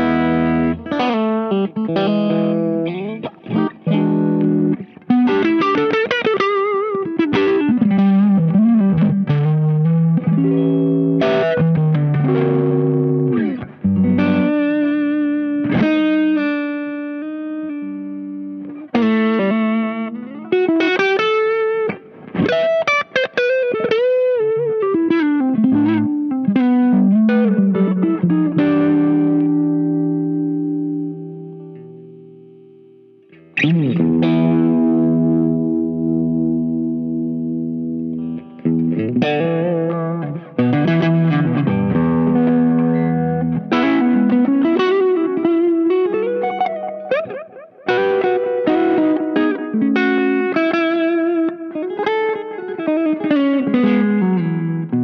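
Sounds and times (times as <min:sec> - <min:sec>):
overdriven electric guitar: 0:00.0 - 0:55.0.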